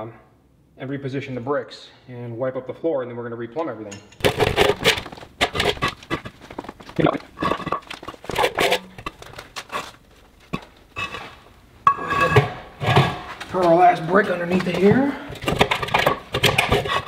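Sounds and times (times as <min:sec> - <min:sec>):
concrete blocks knocking: 0:04.2 - 0:09.6, 0:14.6 - 0:17.0
tank scraping on concrete floor: 0:04.3 - 0:17.0.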